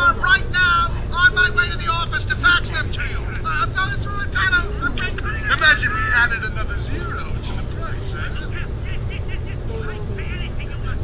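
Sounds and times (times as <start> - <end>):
muffled film dialogue from television: 0.0 - 11.0
steady low hum: 0.0 - 11.0.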